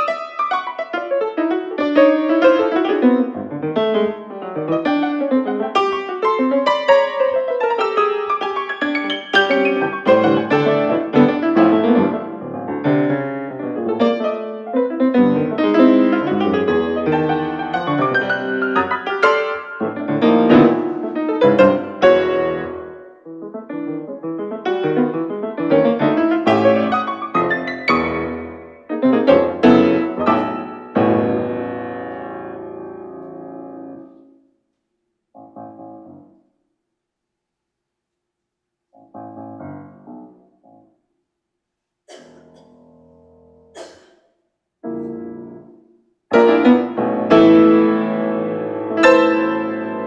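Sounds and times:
grand piano playing quick notes: 0.0s - 34.4s, 44.8s - 50.0s.

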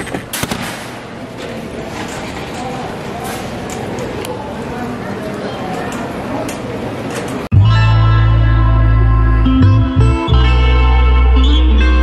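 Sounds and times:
steady background noise: 0.0s - 9.4s.

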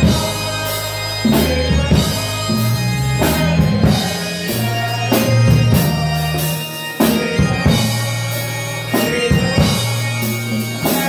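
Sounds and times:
choir singing a hymn: 0.0s - 11.0s
congas and drum kit: 0.0s - 11.0s
electric bass line: 0.0s - 11.0s.

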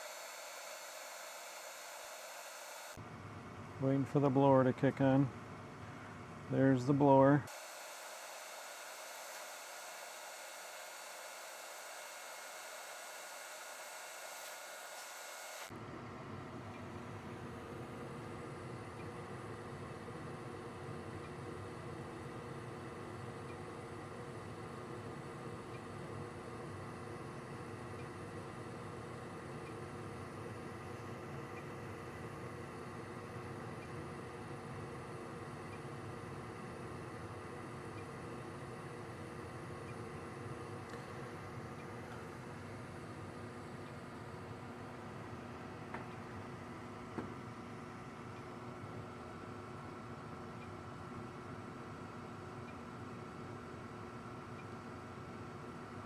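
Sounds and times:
gas furnace running: 15.7s - 50.6s.

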